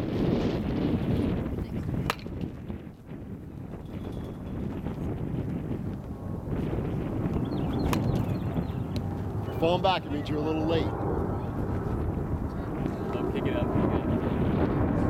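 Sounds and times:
wind noise on microphone: 0:00.0 - 0:15.0
baseball bat striking ball: 0:02.0 - 0:02.5.

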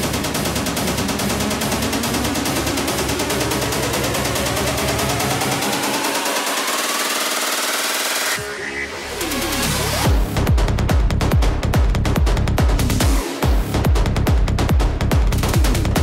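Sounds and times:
rising synth sweep: 0:02.2 - 0:10.2.

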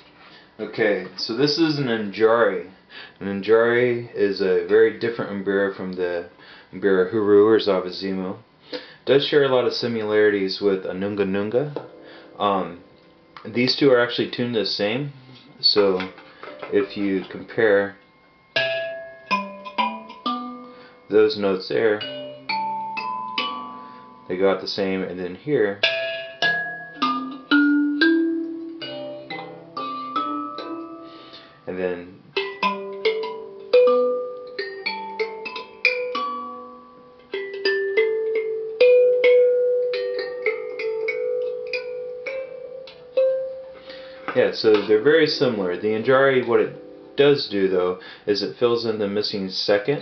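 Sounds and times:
mbira keys plucked: 0:09.3 - 0:50.0
thumb piano notes: 0:09.8 - 0:50.0.

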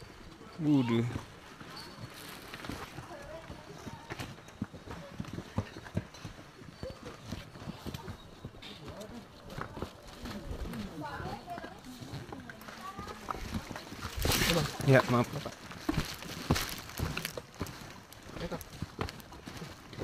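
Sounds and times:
background chatter: 0:00.0 - 0:19.7
footsteps on dirt trail: 0:00.8 - 0:20.0
knocks of boots and gear: 0:01.0 - 0:20.0.

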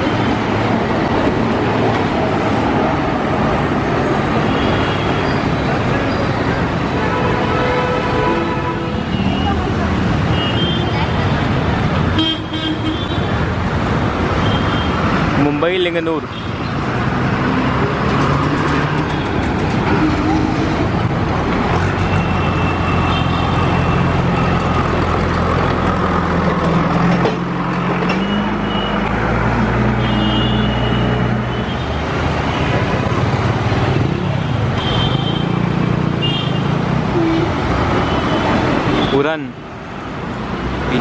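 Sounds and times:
city road traffic: 0:00.0 - 0:41.0.

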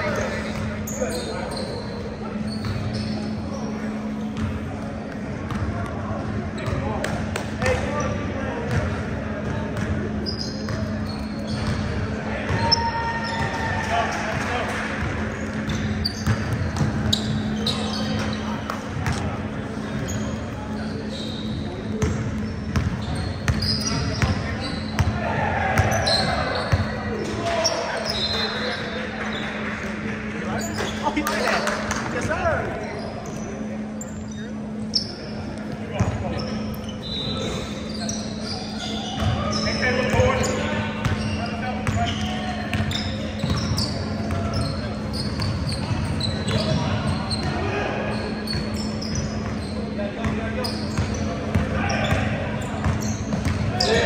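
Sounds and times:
sneakers squeaking: 0:00.0 - 0:54.0
basketball bouncing on court: 0:04.3 - 0:06.0, 0:08.7 - 0:10.1, 0:10.7 - 0:12.8, 0:15.0 - 0:19.4, 0:21.9 - 0:27.0, 0:39.1 - 0:47.6, 0:48.5 - 0:54.0
players calling out: 0:10.1 - 0:54.0.

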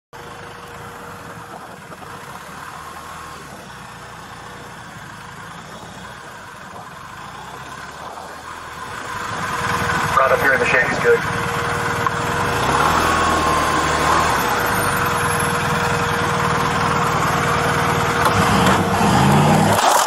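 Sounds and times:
motorcycle engine running: 0:00.2 - 0:20.0.

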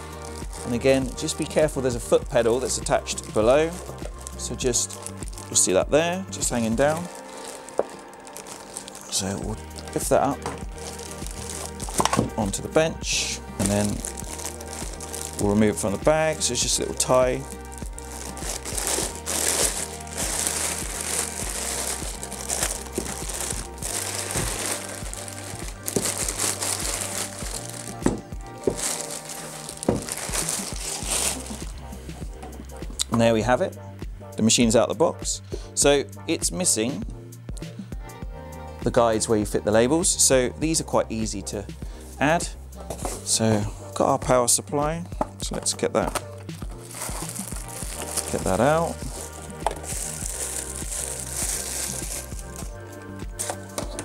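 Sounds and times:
faint background music: 0:00.0 - 0:54.0
plastic bag crinkling: 0:02.9 - 0:05.7, 0:06.6 - 0:12.6, 0:13.6 - 0:31.8, 0:46.8 - 0:54.0.

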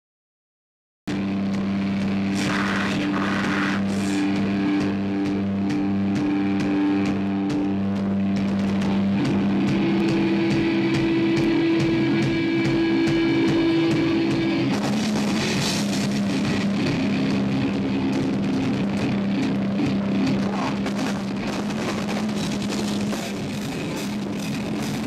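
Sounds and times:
distorted electric guitar droning: 0:01.1 - 0:25.0.

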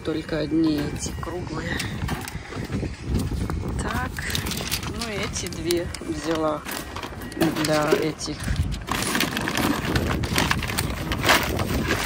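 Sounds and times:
packaging rustling and crackling: 0:00.0 - 0:12.0.

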